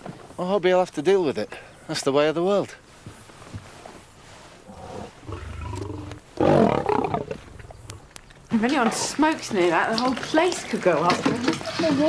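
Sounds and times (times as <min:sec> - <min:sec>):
lion calling: 0:04.6 - 0:08.1.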